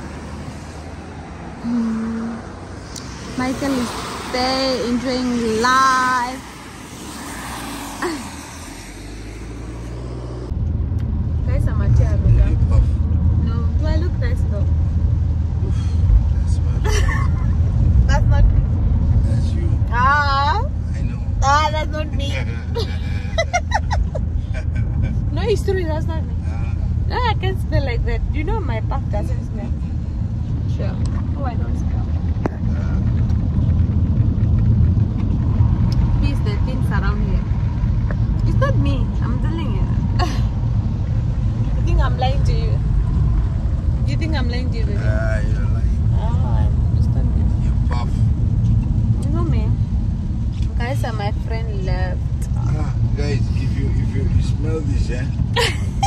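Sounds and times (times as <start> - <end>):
car driving on wet road: 0.0 - 56.0
people talking: 1.6 - 2.4, 3.4 - 6.4, 11.5 - 12.8, 13.4 - 14.7, 18.1 - 18.6, 19.2 - 24.0, 24.6 - 29.8, 30.7 - 33.0, 36.2 - 37.5, 38.4 - 40.4, 41.8 - 42.8, 44.1 - 48.2, 49.2 - 49.8, 50.6 - 56.0
people laughing: 16.8 - 17.6, 22.7 - 25.1, 55.6 - 56.0.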